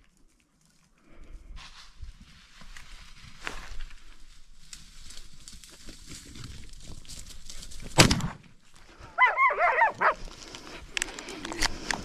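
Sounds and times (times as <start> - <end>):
dog yelping: 9.2 - 10.2.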